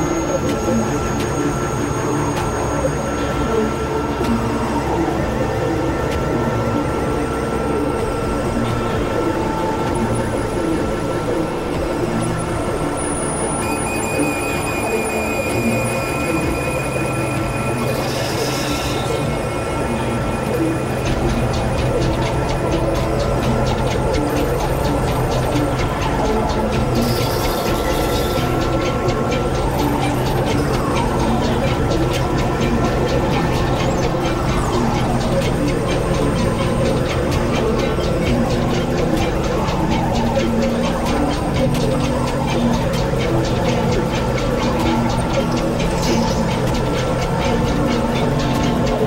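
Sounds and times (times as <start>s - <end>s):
electronic drone music: 0.0s - 49.0s.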